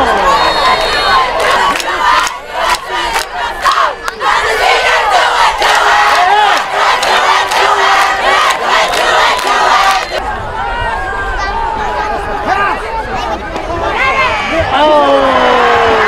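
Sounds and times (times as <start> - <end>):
crowd yelling and cheering: 0.0 - 16.0.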